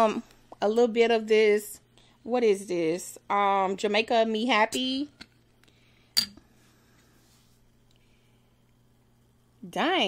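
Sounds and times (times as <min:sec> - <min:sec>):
glass bottle clinking on table: 0:06.2 - 0:06.4.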